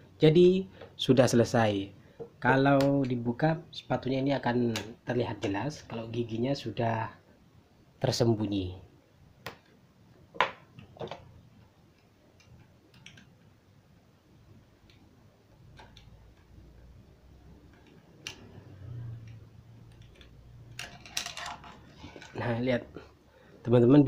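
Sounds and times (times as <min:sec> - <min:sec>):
small metallic clicks and taps: 0:10.4 - 0:13.5, 0:14.8 - 0:16.9, 0:17.6 - 0:22.4.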